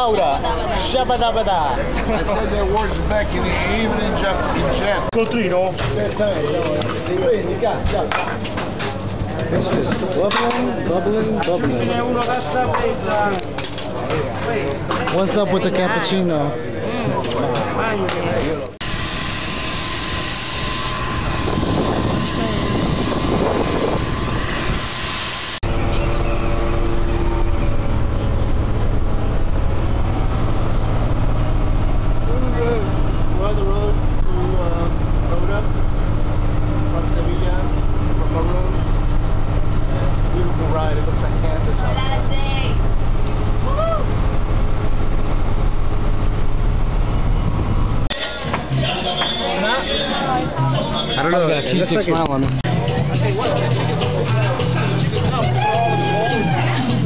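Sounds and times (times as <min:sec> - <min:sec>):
bus engine drone: 0:00.0 - 0:05.2, 0:18.6 - 0:54.7
jet engine rushing and whining: 0:18.8 - 0:48.1
faint voices: 0:48.1 - 0:57.0.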